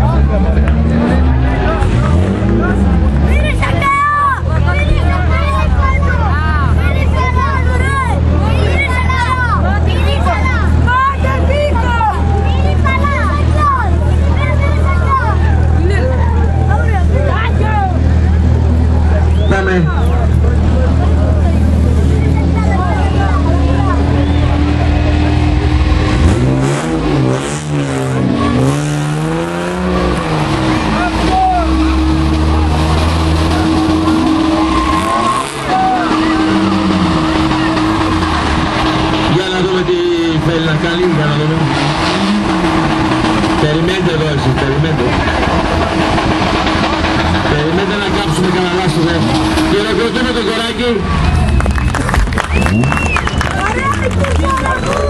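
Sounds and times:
car engine revving: 0.0 - 55.0
tyres squealing: 27.9 - 51.6.

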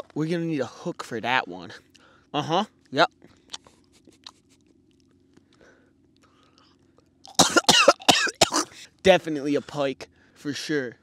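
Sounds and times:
faint small ticks: 2.8 - 7.2
man coughing: 7.4 - 8.8.

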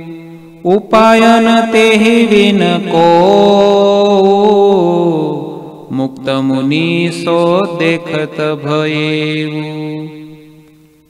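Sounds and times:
man chanting into microphone: 0.0 - 10.7.

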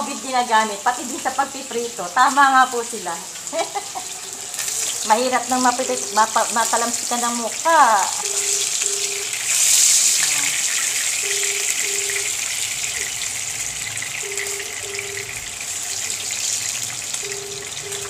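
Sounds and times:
fish sizzling in oil: 0.0 - 18.0
short beeps: 8.2 - 9.4, 11.2 - 13.1, 14.2 - 15.4, 17.2 - 18.0.

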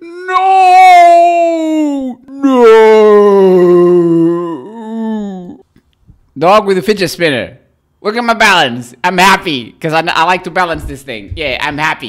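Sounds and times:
man's drawn-out oooh: 0.0 - 5.7.

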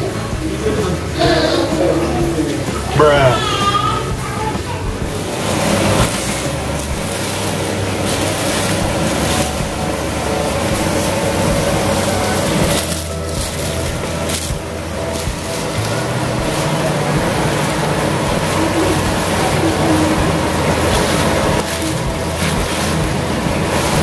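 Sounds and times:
steady background din: 0.0 - 24.0
person calling out: 2.9 - 4.1
plastic wrappers crinkling: 5.2 - 24.0.

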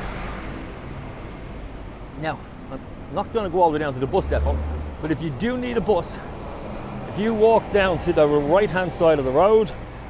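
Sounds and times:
vehicle passing rumble: 0.0 - 10.0.

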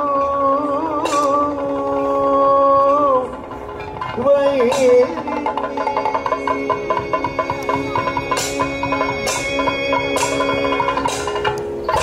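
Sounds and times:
person singing: 0.0 - 3.5, 4.1 - 12.0
steady drone: 0.0 - 12.0
fast drum strokes: 3.2 - 12.0.

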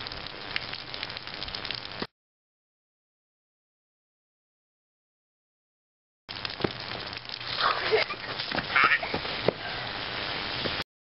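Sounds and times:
steady outdoor hiss: 6.3 - 10.8
short cries: 8.7 - 9.1.

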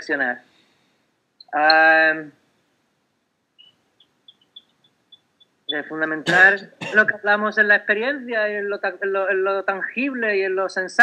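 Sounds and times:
small bird chirping: 1.4 - 1.9, 3.6 - 6.0.

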